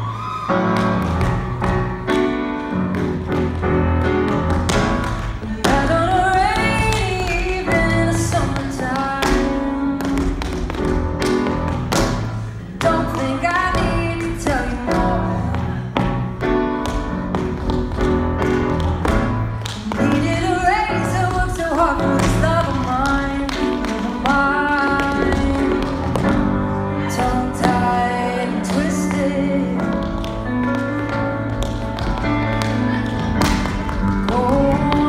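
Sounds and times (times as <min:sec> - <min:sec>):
recorded pop song: 0:00.0 - 0:35.0
tap shoes on stage floor: 0:00.7 - 0:35.0.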